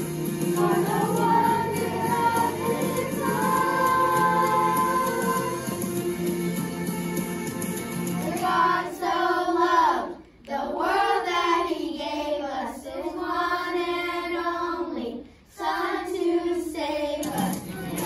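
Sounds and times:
children singing: 0.0 - 6.1, 8.2 - 18.0.

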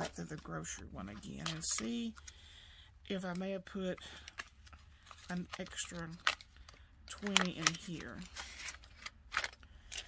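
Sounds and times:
paper money rustling: 0.0 - 2.4, 3.1 - 10.0.

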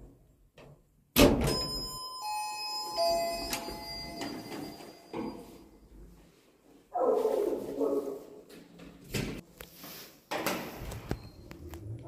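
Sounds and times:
ringing metallic tones: 1.5 - 5.9.

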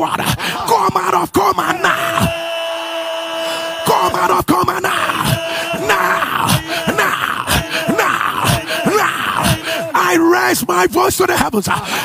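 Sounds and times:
man making falling cries: 0.0 - 10.5.

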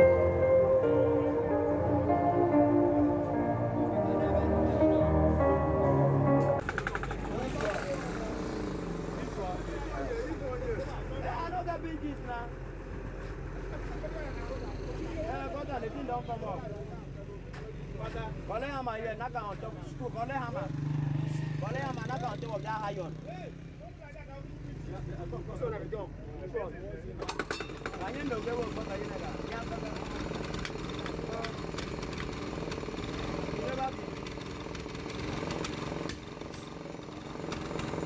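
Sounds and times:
background music: 0.0 - 6.6
low engine drone: 0.0 - 6.7
men talking: 2.8 - 6.3, 7.1 - 12.6, 13.6 - 20.8, 21.6 - 27.3, 27.9 - 30.3.

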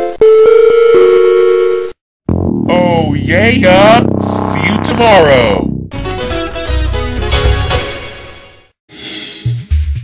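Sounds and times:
electronic logo jingle: 2.3 - 5.9.

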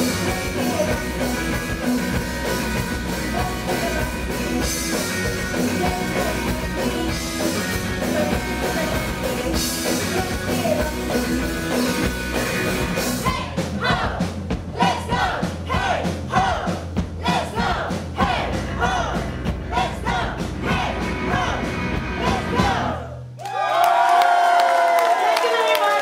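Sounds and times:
live pop-punk band: 0.0 - 23.2
shouted vocals: 13.2 - 26.0
crowd cheering and whooping: 23.4 - 26.0.

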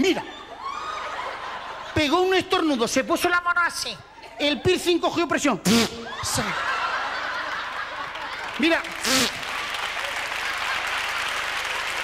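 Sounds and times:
audience laughing: 0.0 - 2.8, 6.1 - 11.4.

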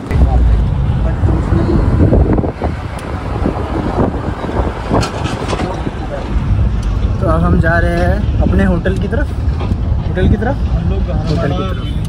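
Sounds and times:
car interior road and engine rumble: 0.0 - 12.0.

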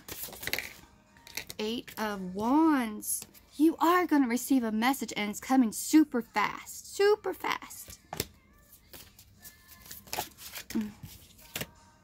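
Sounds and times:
papery card swishes: 8.8 - 11.7.

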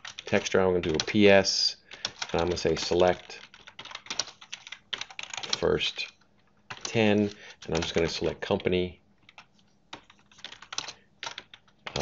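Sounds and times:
computer keyboard typing: 0.0 - 1.2, 1.9 - 8.3, 9.2 - 12.0.

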